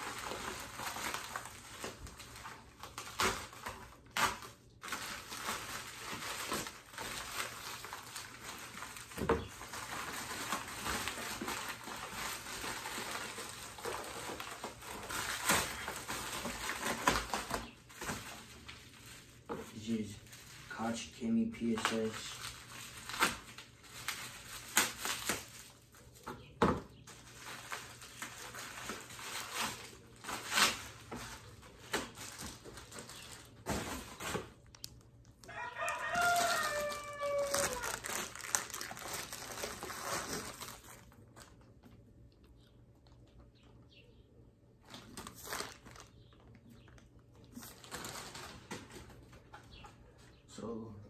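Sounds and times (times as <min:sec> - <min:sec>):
plastic packaging crinkling: 0:00.0 - 0:26.3, 0:27.0 - 0:43.7, 0:44.8 - 0:49.8
rooster crowing: 0:35.4 - 0:38.0.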